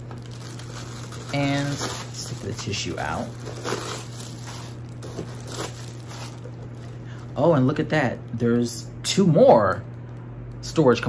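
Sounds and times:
tissue paper crinkling: 0.0 - 7.4.

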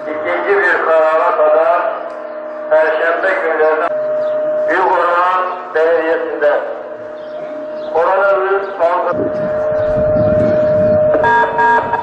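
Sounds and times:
call to prayer over loudspeaker: 0.0 - 12.0.

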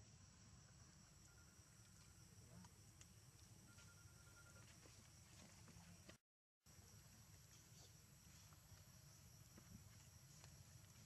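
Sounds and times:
high insect drone: 6.7 - 11.0.

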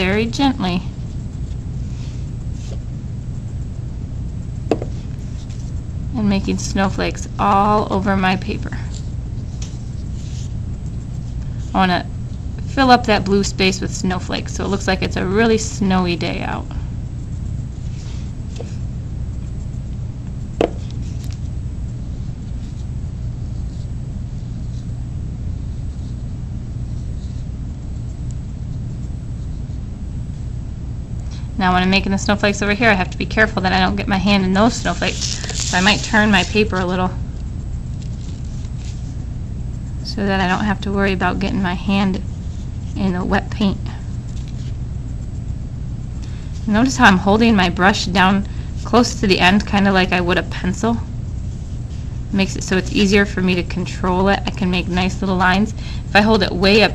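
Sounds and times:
low background rumble: 0.0 - 56.9
steady low hum: 0.0 - 56.9.

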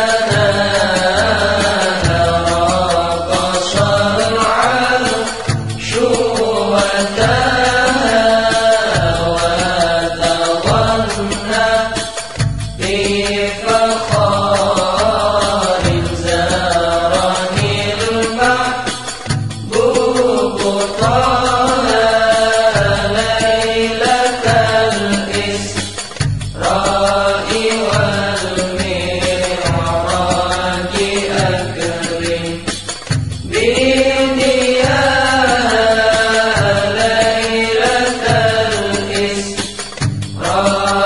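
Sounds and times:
devotional song singing: 0.0 - 41.0
held bass notes: 0.3 - 37.7.

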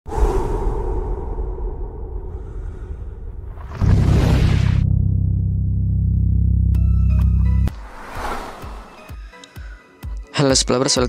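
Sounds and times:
steady low rumble: 0.1 - 6.7
whoosh sound effect: 7.7 - 9.4.

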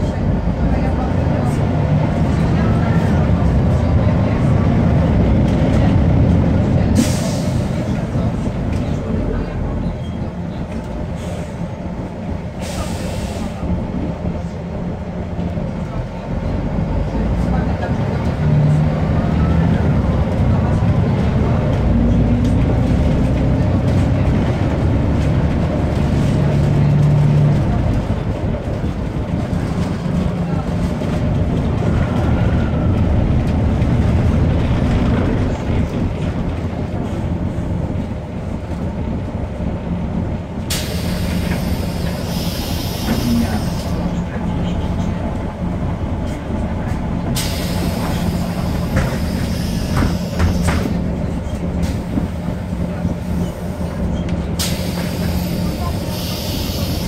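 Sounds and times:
bus diesel engine running: 0.0 - 57.0.

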